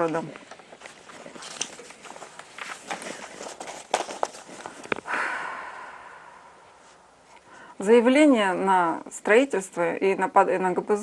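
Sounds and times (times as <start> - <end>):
paper rustling and crackling: 0.0 - 5.1.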